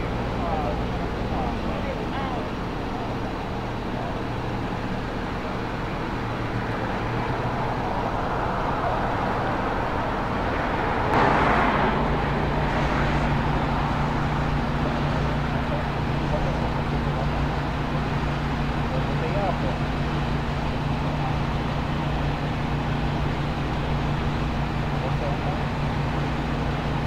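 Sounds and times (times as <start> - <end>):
traffic engine hum: 0.0 - 27.0
vehicle passing by: 6.5 - 19.5.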